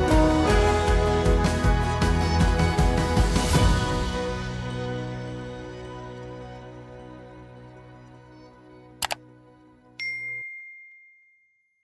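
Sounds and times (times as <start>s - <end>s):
background music: 0.0s - 10.4s
notification bell ding: 10.0s - 11.7s.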